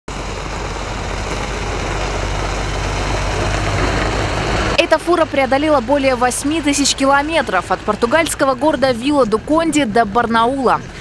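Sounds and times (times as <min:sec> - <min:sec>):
diesel truck engine passing slowly: 0:00.1 - 0:11.0.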